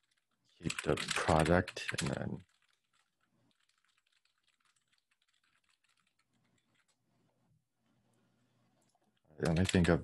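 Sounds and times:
computer keyboard typing: 0.0s - 7.0s, 9.4s - 10.0s.

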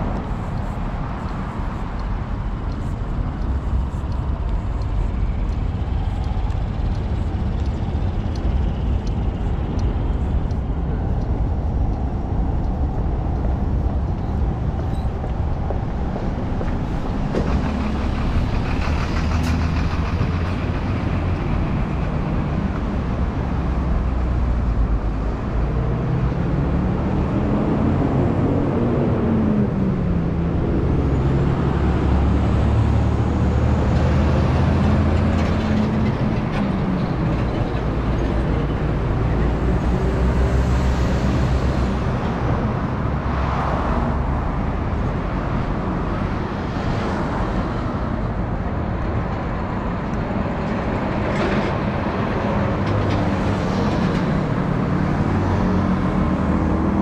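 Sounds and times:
road traffic rumble: 0.0s - 57.0s
truck passing close by: 13.7s - 57.0s.

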